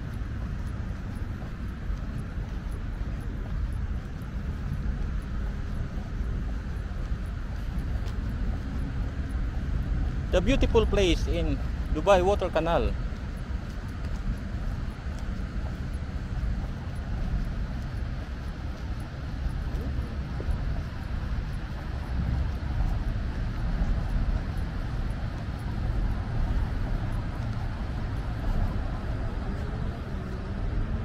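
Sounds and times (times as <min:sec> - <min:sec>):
city road traffic rumble: 0:00.0 - 0:31.0.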